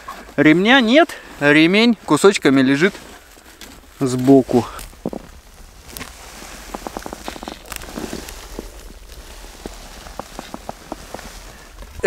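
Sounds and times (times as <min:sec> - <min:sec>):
low wind rumble: 0:03.2 - 0:12.0.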